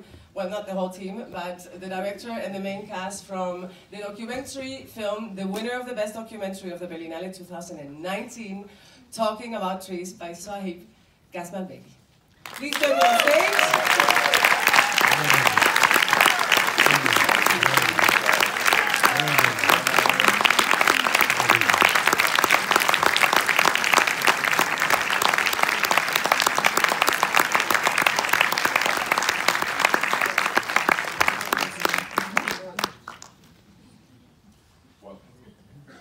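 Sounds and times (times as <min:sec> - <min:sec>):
audience clapping: 0:12.4 - 0:33.5
voices: 0:15.0 - 0:21.9.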